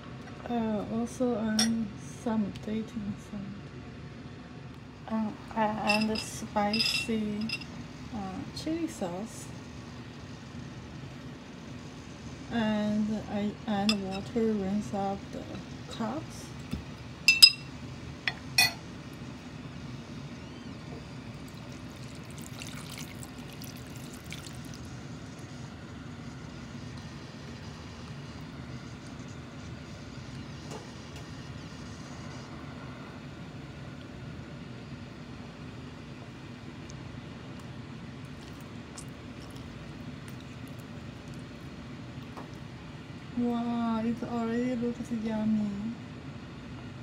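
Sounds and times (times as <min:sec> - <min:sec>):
glass clinks: 0:05.9 - 0:07.6, 0:17.3 - 0:17.7, 0:18.6 - 0:18.8
water poured into clay pot: 0:22.0 - 0:24.8.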